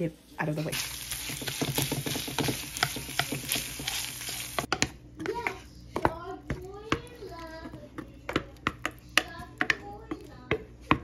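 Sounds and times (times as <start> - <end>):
meat sizzling in a frying pan: 0.6 - 4.7
wooden spatula stirring: 0.7 - 11.0.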